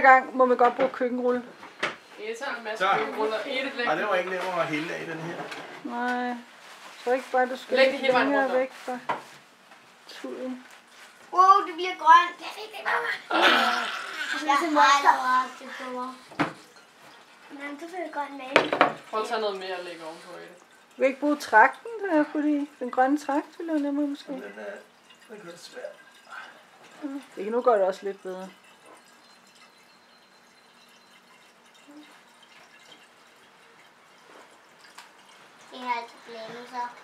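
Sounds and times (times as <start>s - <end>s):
liquid trickling into a glass flask: 2.0s - 5.7s, 6.4s - 11.3s, 12.8s - 37.0s
metal jug clinking on glass: 18.5s - 36.7s.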